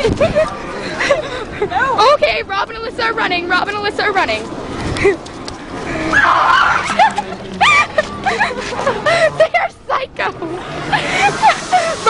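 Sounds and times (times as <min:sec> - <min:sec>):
rising squeals: 0:05.8 - 0:08.5.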